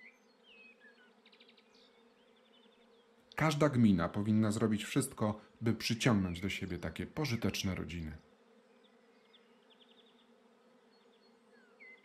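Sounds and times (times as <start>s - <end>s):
faint bee buzzing: 0.0s - 12.0s.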